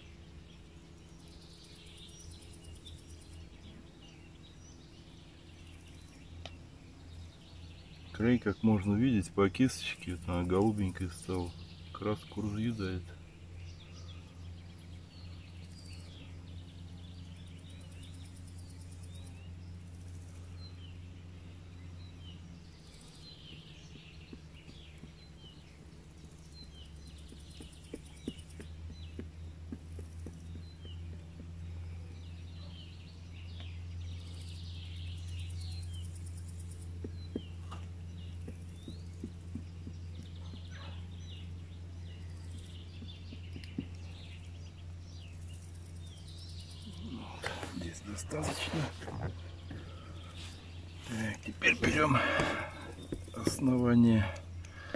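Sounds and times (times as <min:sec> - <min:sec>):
small birds chirping: 0:00.0 - 0:54.9
steady low hum: 0:00.0 - 0:54.9
soft taps: 0:27.0 - 0:31.7.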